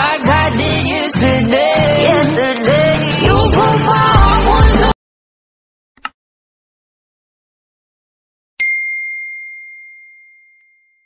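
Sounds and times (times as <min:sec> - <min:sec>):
bell-like ding: 0:08.6 - 0:11.0.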